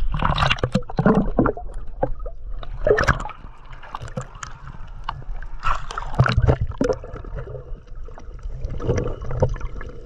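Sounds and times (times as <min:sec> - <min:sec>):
water sloshing and gurgling: 0:00.0 - 0:10.0.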